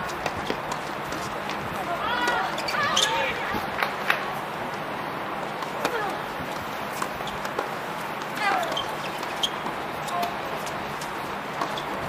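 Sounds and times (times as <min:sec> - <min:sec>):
balls bouncing on hard court: 0:00.0 - 0:04.2, 0:05.6 - 0:12.0
players calling out: 0:01.8 - 0:04.1
tennis balls struck with rackets: 0:05.6 - 0:12.0.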